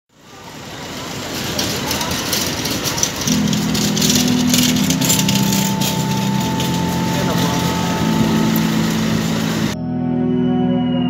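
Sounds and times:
crackling rain patter: 0.2 - 9.8
passing voices: 0.2 - 9.8
steady low hum: 0.2 - 9.8.

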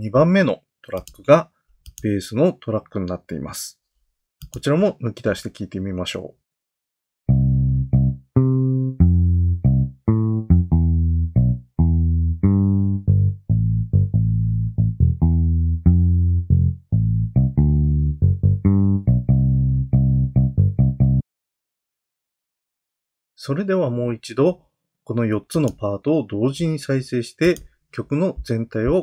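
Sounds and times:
electric bass playing bass line: 7.3 - 21.2.

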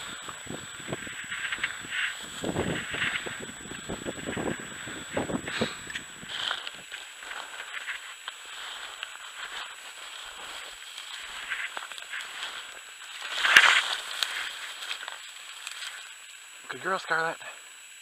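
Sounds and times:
footsteps through snowy grass: 0.0 - 16.2
grass stalks rustling: 0.0 - 16.3.

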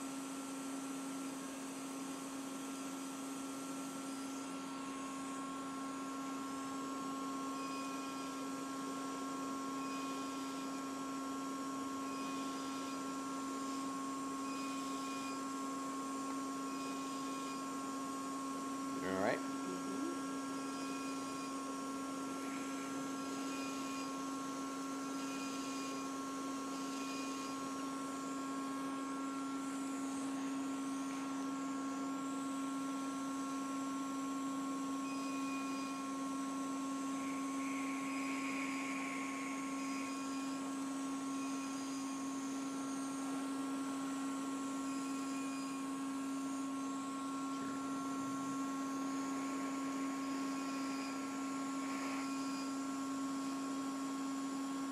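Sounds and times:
electrical hum of medical equipment: 0.0 - 54.9.

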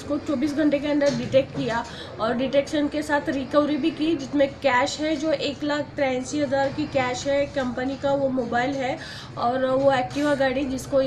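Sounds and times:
woman talking: 0.0 - 11.0.

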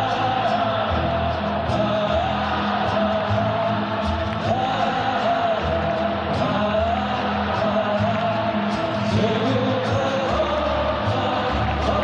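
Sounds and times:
acoustic guitar and band: 0.0 - 12.0
crowd singing in unison: 0.0 - 12.0.

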